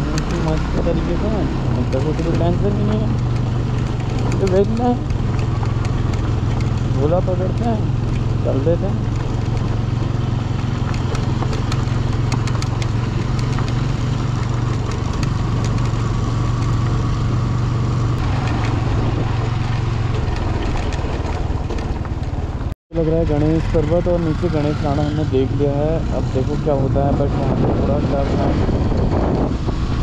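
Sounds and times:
scattered clicks: 0.0s - 0.9s, 1.8s - 8.3s, 10.8s - 17.0s
tyres on gravel: 0.0s - 23.5s
motorcycle engine running: 0.0s - 30.0s
wind: 0.0s - 30.0s.

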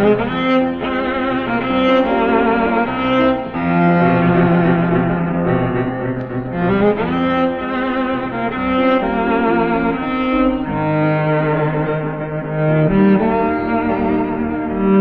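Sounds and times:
cello slow melody: 0.0s - 15.0s
piano accompaniment: 0.0s - 15.0s.

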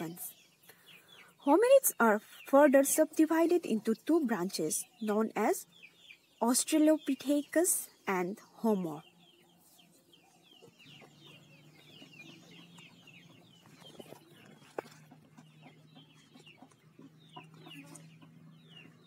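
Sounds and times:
faint birds chirping: 0.0s - 19.0s.

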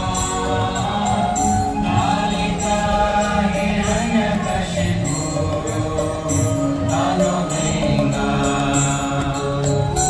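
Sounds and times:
devotional chanting with music: 0.0s - 10.0s.

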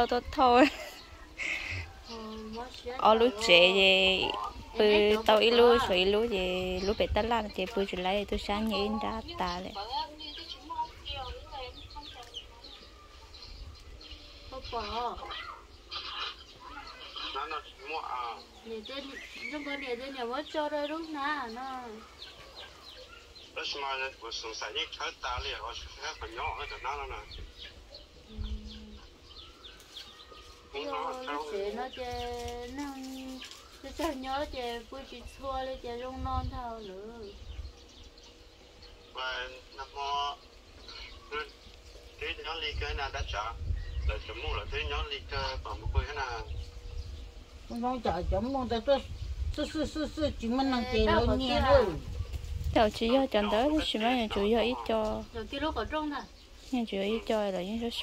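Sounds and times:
bird-like calls: 0.0s - 47.7s
steady low rumble: 34.3s - 56.6s.

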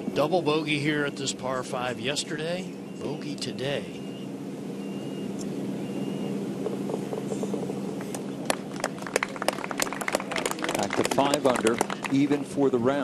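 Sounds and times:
low outdoor murmur: 0.0s - 13.0s
hand claps: 8.4s - 12.2s.

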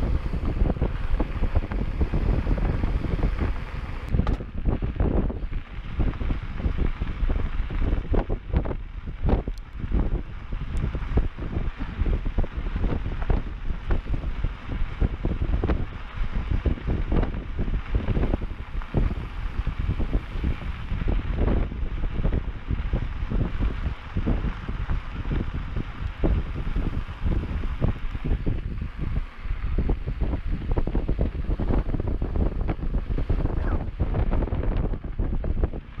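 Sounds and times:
bike knocks and rattles: 0.0s - 10.2s
tyres rumbling on dirt: 0.0s - 36.0s
wind buffeting microphone: 0.0s - 36.0s.

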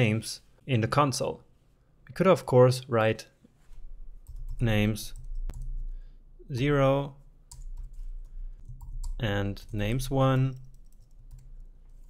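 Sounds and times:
keyboard keys clicking: 4.2s - 5.8s.

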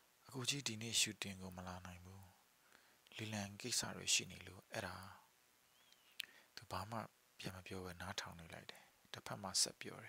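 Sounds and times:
man reading aloud: 0.3s - 2.4s, 3.1s - 5.3s, 6.6s - 10.0s.

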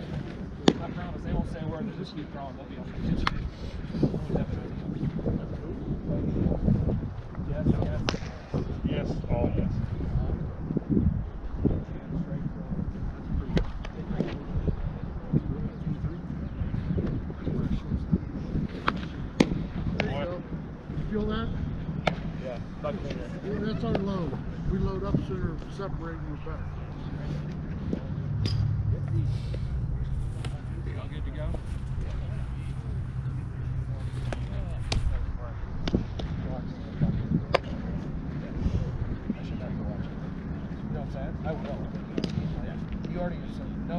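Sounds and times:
faint distant voices: 0.0s - 43.9s
low wind rumble: 0.0s - 43.9s
baseballs striking leather gloves: 0.6s - 1.0s, 8.0s - 8.4s, 18.7s - 20.2s, 22.0s - 22.4s, 33.9s - 35.2s, 35.8s - 36.4s, 37.0s - 37.9s, 41.9s - 43.2s
baseballs popping into mitt: 8.0s - 8.4s, 22.0s - 22.3s, 34.1s - 35.2s.

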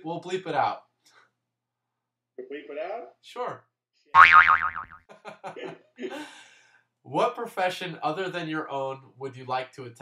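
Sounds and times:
comedic boing sound effect: 4.2s - 5.1s
laughter: 5.1s - 6.4s.

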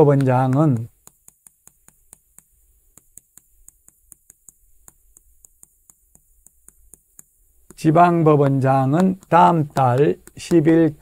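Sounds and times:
chalk tapping on chalkboard: 0.0s - 11.0s.

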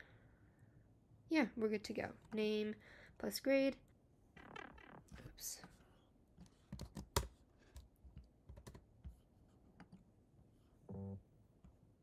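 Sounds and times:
brief low tone: 10.9s - 11.2s.

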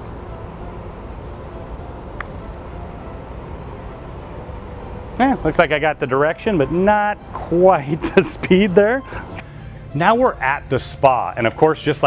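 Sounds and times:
putter striking golf ball: 2.1s - 3.0s.

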